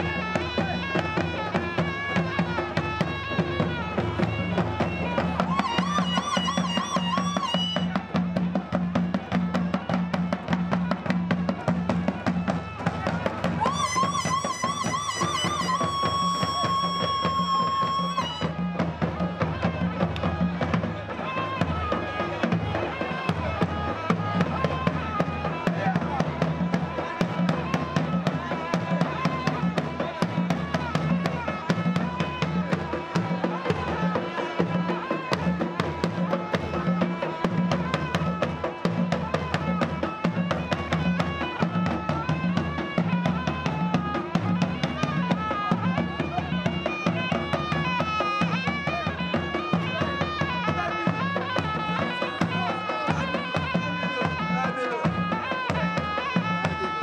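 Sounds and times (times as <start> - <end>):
double-reed shawm melody: 0.0 - 57.0
hand drums drumming: 0.0 - 57.0.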